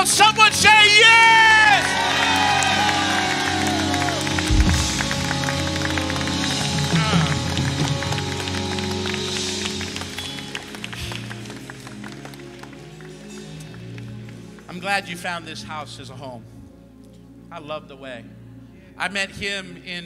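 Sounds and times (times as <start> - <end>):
congregation clapping: 0.0 - 15.4
worship band soft music: 0.0 - 20.0.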